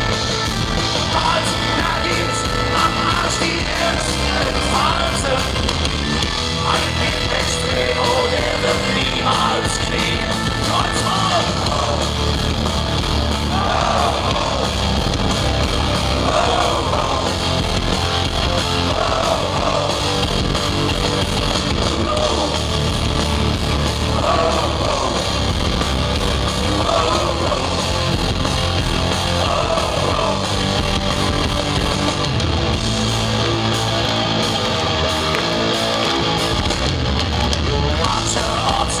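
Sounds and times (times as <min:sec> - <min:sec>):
rock band playing live: 0:00.0 - 0:39.0.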